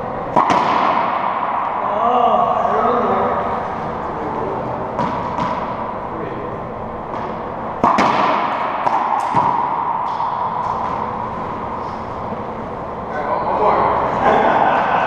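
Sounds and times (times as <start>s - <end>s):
racquetball hitting racquet and walls: 0.0s - 4.0s, 4.6s - 6.2s, 6.9s - 13.1s.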